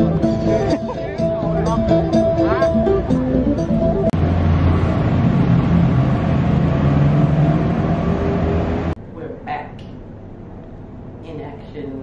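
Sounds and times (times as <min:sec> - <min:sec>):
low engine drone: 0:00.0 - 0:09.1
wind: 0:03.8 - 0:12.0.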